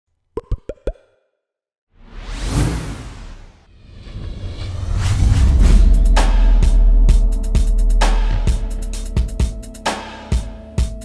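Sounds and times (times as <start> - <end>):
cartoon pop blips rising in pitch: 0.4 - 1.3.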